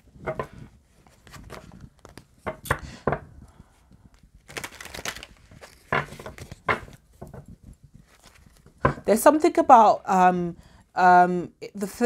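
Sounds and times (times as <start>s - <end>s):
cards being shuffled: 0.3s - 2.8s, 4.4s - 7.4s, 8.0s - 8.8s.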